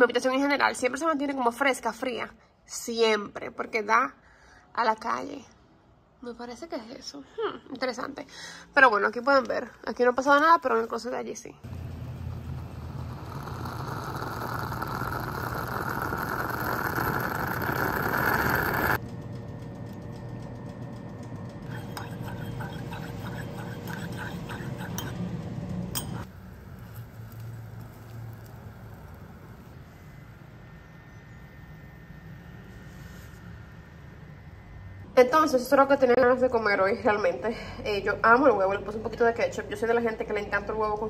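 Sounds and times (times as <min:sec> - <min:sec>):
moka pot hissing and gurgling: 0:11.7 - 0:19.0, 0:21.7 - 0:25.1, 0:26.2 - 0:31.5
spoon clinking against mug: 0:21.7 - 0:25.3, 0:26.0 - 0:26.3.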